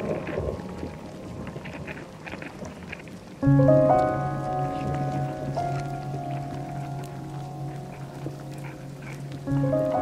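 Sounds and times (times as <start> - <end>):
electronic ambient music: 0.0 - 10.0.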